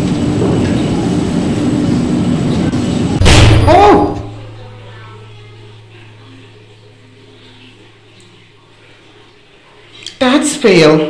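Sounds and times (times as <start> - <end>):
faint low hum: 2.5 - 10.1.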